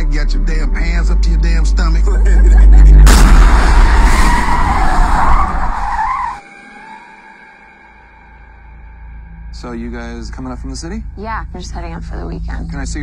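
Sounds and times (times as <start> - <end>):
car crash: 3.0 - 6.4
tyres skidding: 3.4 - 6.4.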